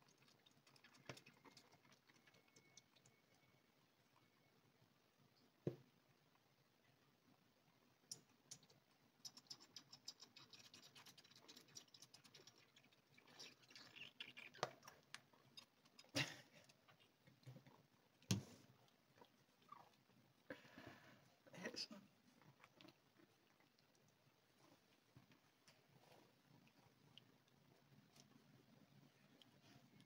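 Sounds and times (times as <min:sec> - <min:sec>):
kitten suckling wet clicks: 0:00.0 - 0:03.4, 0:08.1 - 0:20.2, 0:22.4 - 0:24.5.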